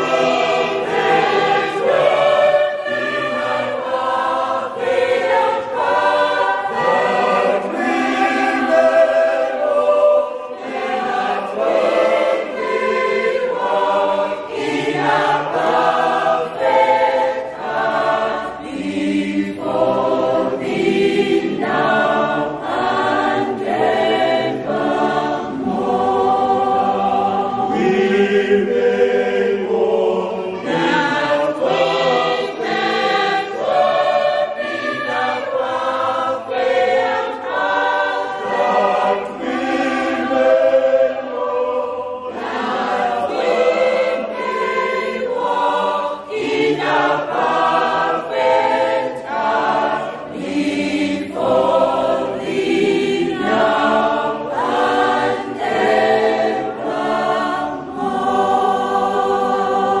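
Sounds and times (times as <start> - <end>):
mixed choir singing: 0.0 - 60.0.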